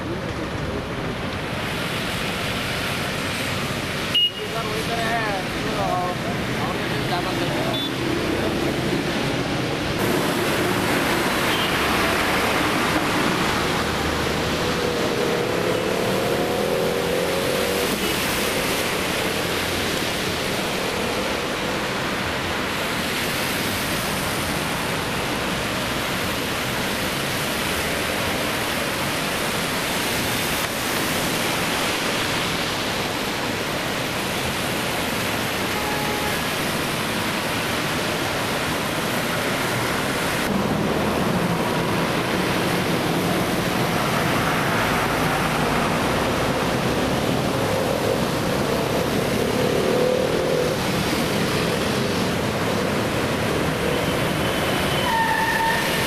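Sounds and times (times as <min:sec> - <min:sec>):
tyres splashing through water: 0:00.2 - 0:56.0.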